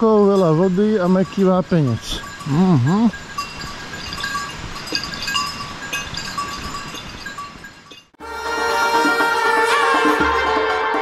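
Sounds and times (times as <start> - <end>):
small bells clinking: 0.0 - 8.2.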